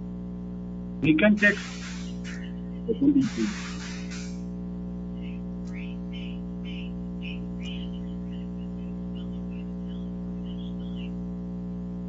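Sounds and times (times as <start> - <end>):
electrical buzz on phone line: 0.0 - 12.0.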